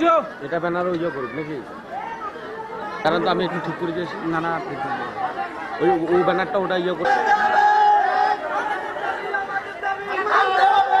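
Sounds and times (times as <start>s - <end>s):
crowd talking and calling out: 0.0s - 11.0s.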